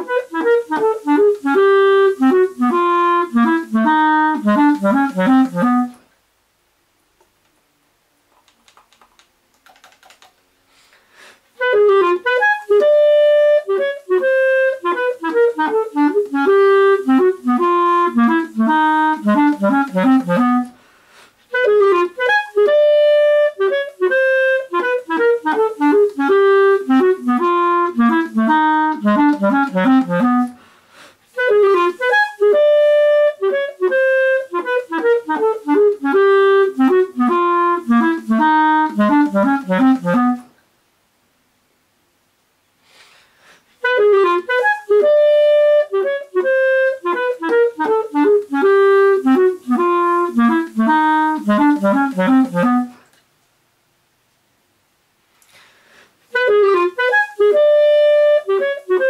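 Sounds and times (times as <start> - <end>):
clarinet playing fast exercise: 0.0 - 6.0, 11.6 - 20.8, 21.5 - 30.6, 31.3 - 40.6, 43.8 - 53.0, 56.3 - 59.0
faint clicking: 8.3 - 10.5
breath: 10.7 - 11.5, 20.8 - 21.4, 30.6 - 31.3, 42.8 - 43.8, 55.4 - 56.2.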